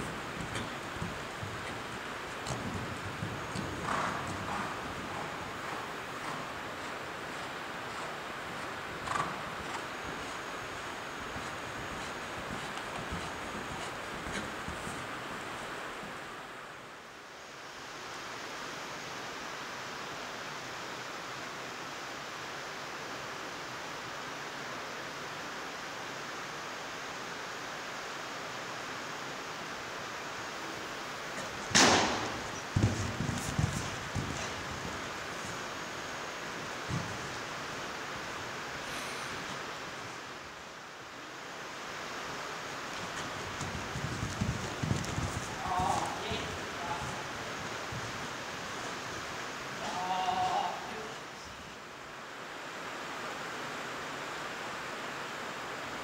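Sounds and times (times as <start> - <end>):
horse knocking rail: 0.0 - 15.2, 31.4 - 35.8, 36.7 - 37.5, 42.9 - 49.1
horse hoofbeats on sand: 0.0 - 16.2, 31.3 - 38.6, 42.4 - 50.1
rain on metal roof: 0.0 - 17.0, 30.1 - 56.0.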